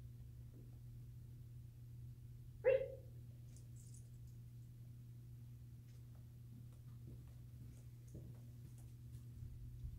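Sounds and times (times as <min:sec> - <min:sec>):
dog barking: 0:02.6 - 0:03.1.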